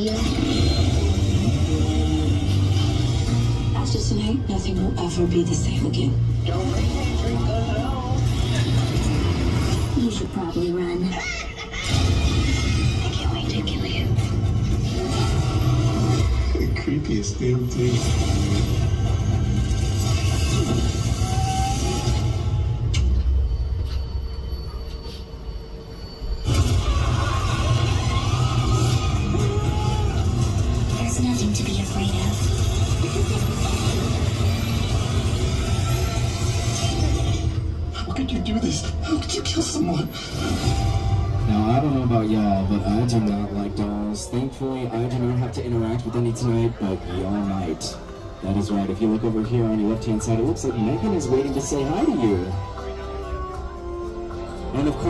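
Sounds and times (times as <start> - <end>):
steady low drone: 0.0 - 10.8
distorted guitar-like music: 0.0 - 10.9, 11.8 - 24.2, 26.4 - 55.0.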